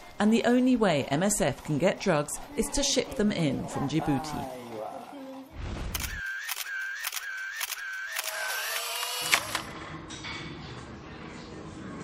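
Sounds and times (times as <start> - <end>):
camera shutter clicks: 5.9 - 9.7.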